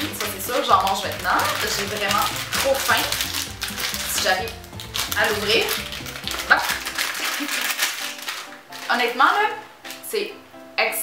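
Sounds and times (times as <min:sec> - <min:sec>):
plastic pouch crinkling: 0:00.0 - 0:10.1
background music: 0:00.0 - 0:11.0.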